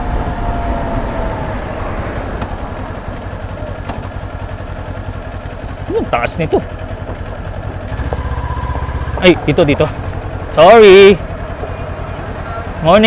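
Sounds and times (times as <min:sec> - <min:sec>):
faint falling whine: 0:00.0 - 0:05.1
motorcycle engine: 0:00.0 - 0:13.0.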